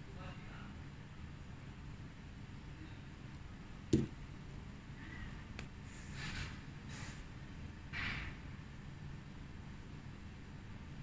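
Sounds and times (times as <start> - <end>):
faint low room hum: 0.0 - 11.0
plastic bottle set down on table: 3.9 - 4.1.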